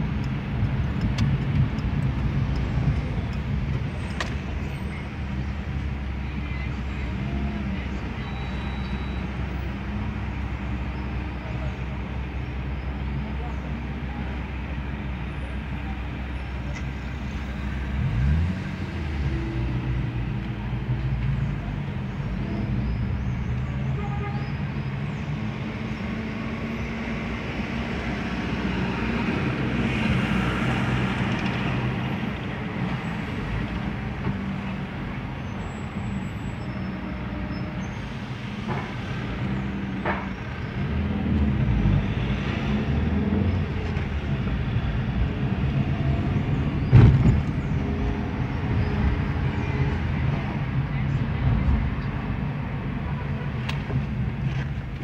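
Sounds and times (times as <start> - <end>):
bus passing: 0.0 - 55.0
car engine and road noise: 0.0 - 55.0.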